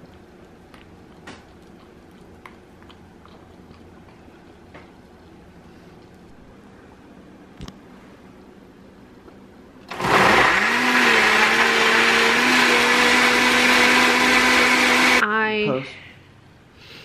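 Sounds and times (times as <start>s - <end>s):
blender motor running: 9.9s - 15.2s.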